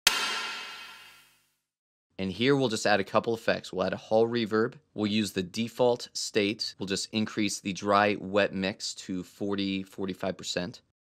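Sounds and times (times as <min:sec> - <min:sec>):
electronic drum hit: 0:00.0 - 0:01.4.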